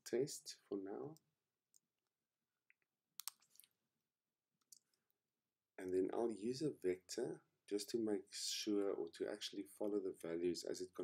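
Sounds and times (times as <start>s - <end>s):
computer keyboard clicks: 3.2s - 3.4s.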